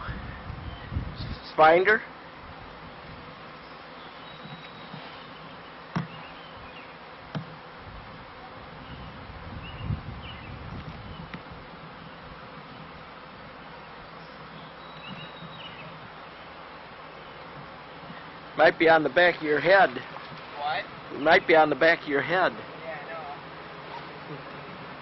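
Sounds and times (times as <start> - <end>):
bee swarm buzzing: 0.0 - 25.0.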